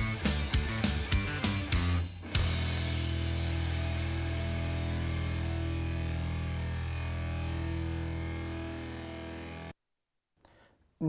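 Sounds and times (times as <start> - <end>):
distorted electric guitar chord: 0.0 - 9.7.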